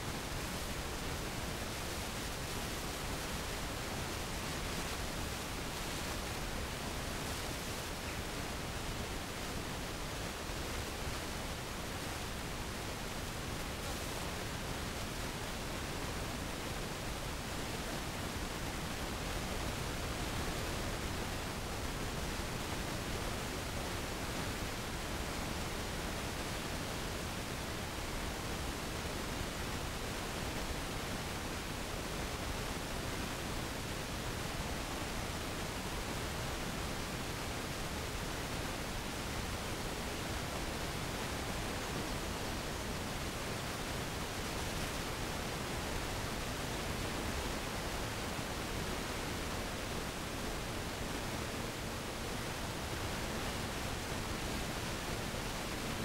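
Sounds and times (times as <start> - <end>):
recording noise hiss: 0.0 - 56.0.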